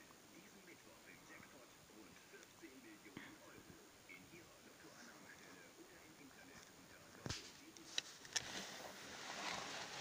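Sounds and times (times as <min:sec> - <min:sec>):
faint indistinct speech: 0:00.0 - 0:10.0.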